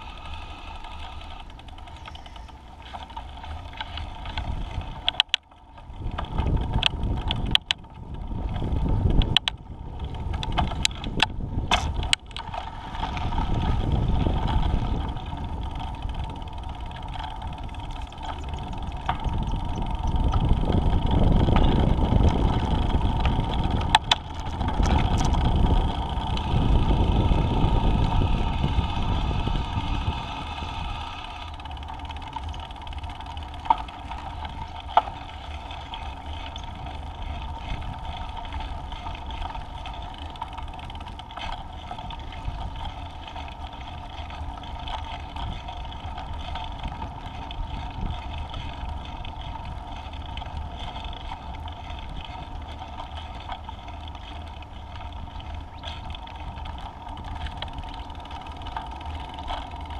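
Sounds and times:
scooter wheels rolling on pavement: 0:00.0 - 0:59.9
wind rumbling on microphone: 0:00.0 - 0:59.9.

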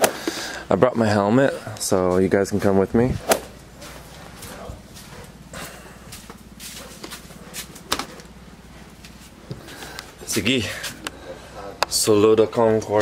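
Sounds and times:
faint low hum: 0:00.4 - 0:13.0.

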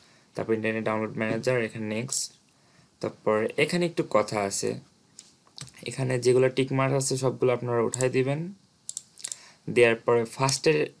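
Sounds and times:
man speaking: 0:00.4 - 0:02.4, 0:03.0 - 0:04.9, 0:05.7 - 0:08.6, 0:09.7 - 0:11.0
computer mouse clicks: 0:07.9 - 0:08.1, 0:08.9 - 0:09.4.

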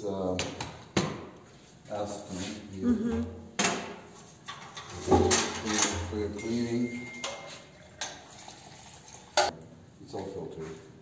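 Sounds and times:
metal paint cans clinking: 0:04.4 - 0:08.3.

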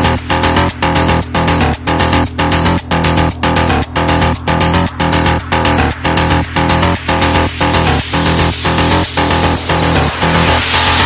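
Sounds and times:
electronic music with steady beat: 0:00.0 - 0:11.0.

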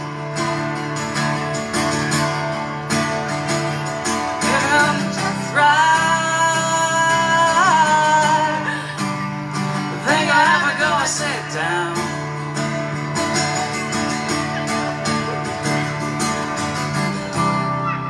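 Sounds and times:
acoustic guitar strumming: 0:00.0 - 0:18.0
man singing: 0:04.4 - 0:09.0, 0:09.9 - 0:12.2.

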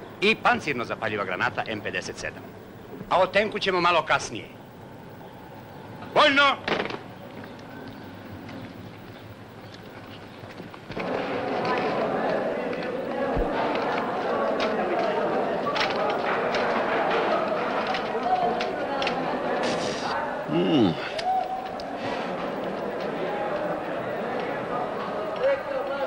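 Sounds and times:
many people talking: 0:00.0 - 0:26.0.

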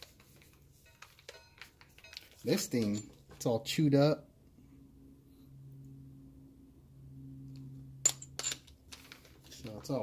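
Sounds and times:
low steady hum: 0:00.0 - 0:09.8
metal bit clinking on workbench: 0:00.8 - 0:03.2, 0:08.0 - 0:08.8.

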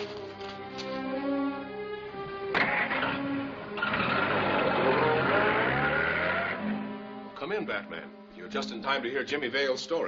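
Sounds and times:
car engine accelerating: 0:02.6 - 0:07.0.

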